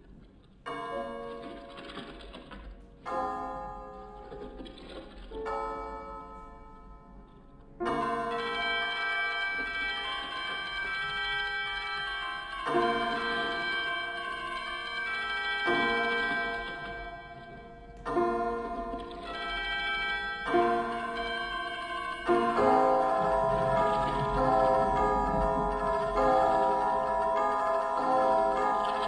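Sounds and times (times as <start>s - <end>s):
piano playing slow chords: 3.0s - 10.3s, 12.5s - 29.0s.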